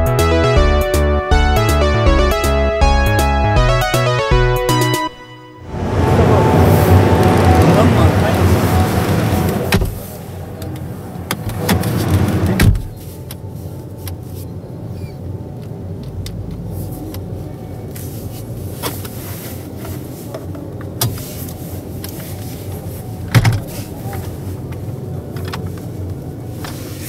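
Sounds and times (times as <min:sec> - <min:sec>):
low steady hum: 0:05.4 - 0:27.0
exhibition hall background noise: 0:05.6 - 0:12.6
sharp thump: 0:09.7 - 0:10.0.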